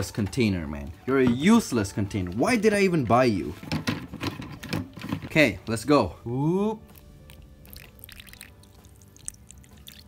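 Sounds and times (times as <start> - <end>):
faint background music: 0.0 - 10.0
water pouring into plastic dish: 6.9 - 10.0
water splashing and trickling: 6.9 - 10.0.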